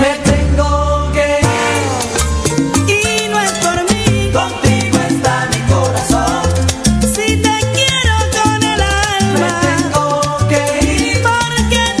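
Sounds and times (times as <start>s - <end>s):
salsa music: 0.0s - 12.0s.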